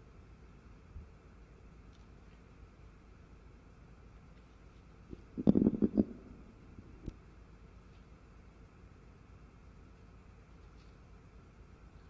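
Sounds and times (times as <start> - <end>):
microphone handling knocks: 5.4 - 6.3.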